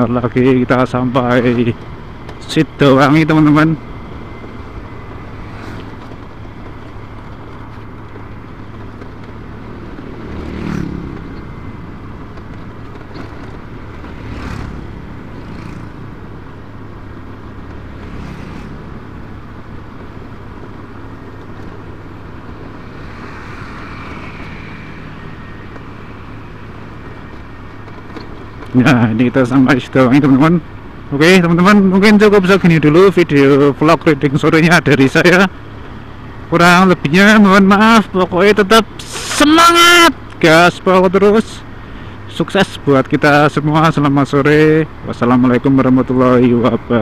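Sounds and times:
motorcycle engine drone: 0.0s - 47.0s
road and wind noise: 0.0s - 47.0s.

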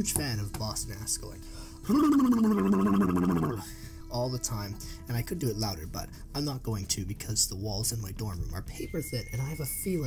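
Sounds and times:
man making gargling vocal sound: 1.9s - 3.6s.

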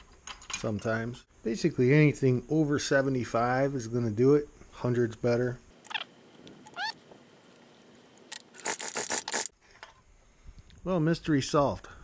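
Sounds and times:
short rising squeaks: 5.8s - 7.1s.

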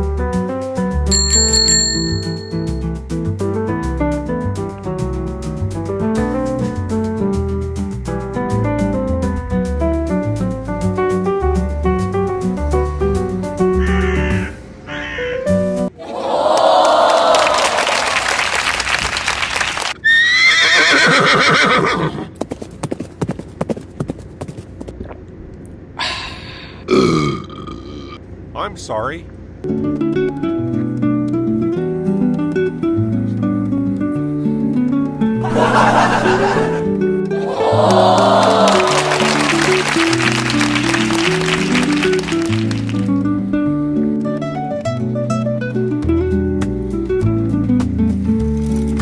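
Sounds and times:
small bell dinging: 1.1s - 2.9s
horse whinnying: 20.0s - 22.3s
clip-clopping hoofbeats: 22.0s - 25.2s
guitar music: 29.6s - 37.5s, 38.8s - 49.0s
short music: 38.4s - 43.2s.

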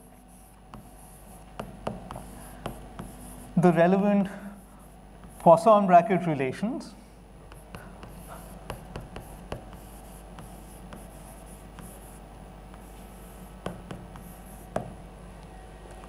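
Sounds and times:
chalk scratching on blackboard: 0.0s - 3.7s, 7.5s - 14.9s
chalk tapping on board: 0.7s - 3.4s, 5.2s - 5.6s, 7.5s - 15.0s.

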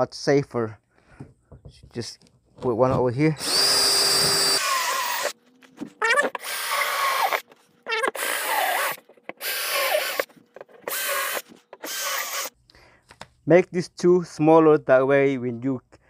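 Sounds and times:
cordless drill boring through plastic: 3.4s - 5.4s, 6.0s - 12.5s.

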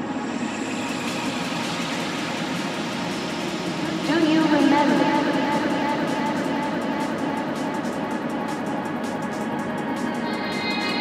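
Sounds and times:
noisy synth wash: 0.0s - 11.0s.

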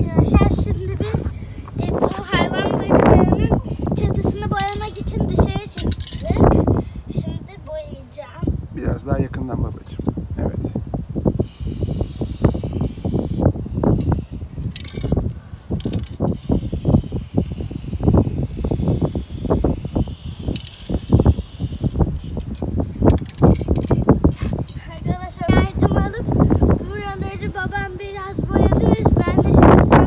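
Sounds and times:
wind buffeting microphone: 0.0s - 30.0s
spray paint can hissing: 11.3s - 15.1s, 15.8s - 24.0s.

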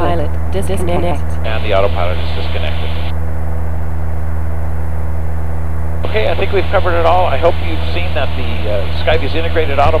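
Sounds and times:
light aircraft engine drone: 0.0s - 10.0s.

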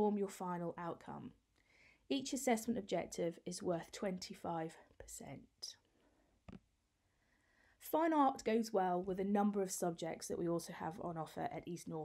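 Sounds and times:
woman speaking: 0.0s - 1.4s, 2.1s - 5.8s, 7.8s - 12.0s.

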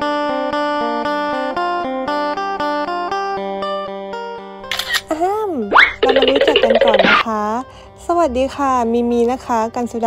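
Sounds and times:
fast upward sweep: 5.8s - 7.2s
fluttering run of pitched notes: 5.8s - 7.2s.

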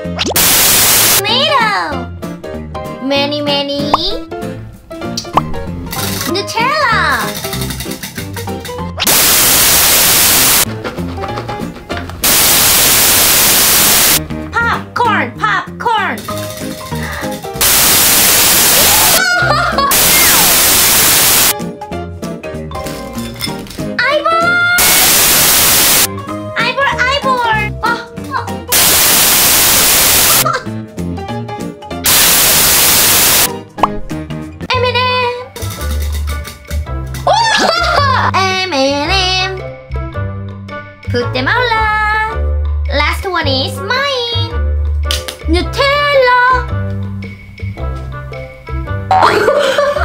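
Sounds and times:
white-noise static: 0.3s - 1.2s, 9.0s - 10.7s, 12.2s - 14.2s, 17.6s - 19.2s, 19.9s - 21.6s, 24.8s - 26.1s, 28.7s - 30.4s, 32.1s - 33.5s
light background music: 1.2s - 9.0s, 10.7s - 12.3s, 14.2s - 17.7s, 21.6s - 24.8s, 26.1s - 28.8s, 30.4s - 32.4s, 33.5s - 50.0s.

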